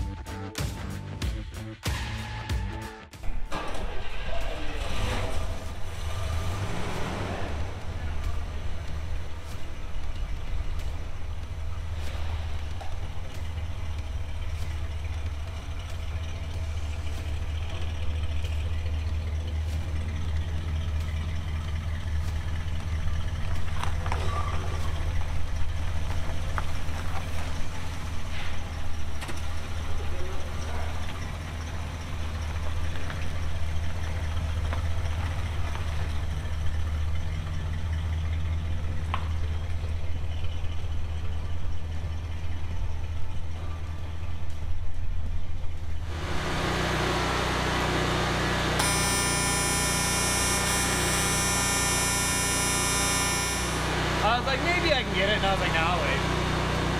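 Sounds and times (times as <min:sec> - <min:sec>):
car engine running at low speed: 0:03.2 - 0:56.9.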